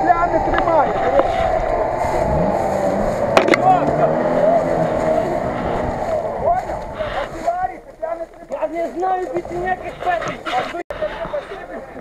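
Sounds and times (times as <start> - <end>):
off-road engine revving in mud: 0.0 - 7.4
voices calling out: 0.0 - 12.0.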